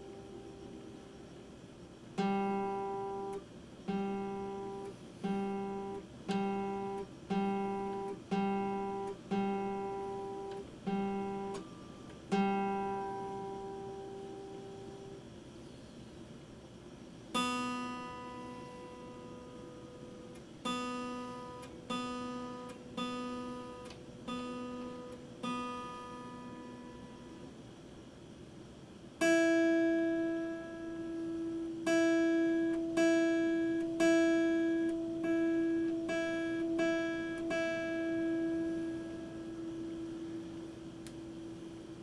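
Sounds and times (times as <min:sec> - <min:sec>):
acoustic guitar strings plucked: 0:02.2 - 0:15.1, 0:17.4 - 0:27.3, 0:29.2 - 0:42.0.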